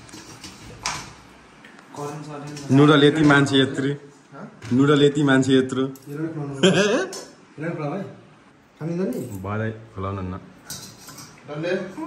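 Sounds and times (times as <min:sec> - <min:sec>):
utensils clinking on steel bowl: 0:00.0 - 0:01.2, 0:01.9 - 0:03.5, 0:10.6 - 0:11.4.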